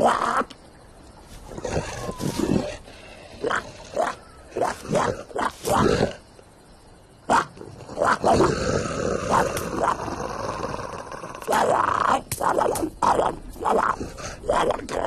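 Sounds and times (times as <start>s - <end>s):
cartoon grunts and growls: 7.3s - 15.0s.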